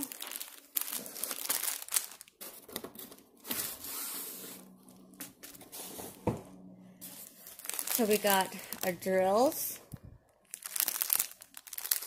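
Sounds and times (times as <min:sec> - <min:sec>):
packaging rustling and crinkling: 0:00.0 - 0:04.7, 0:07.0 - 0:12.0.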